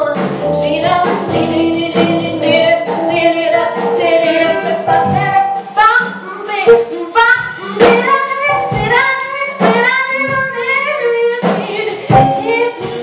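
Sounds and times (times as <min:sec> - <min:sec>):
drum hits: 0:00.0 - 0:13.0
live jazz-blues band: 0:00.0 - 0:13.0
woman singing: 0:00.0 - 0:13.0.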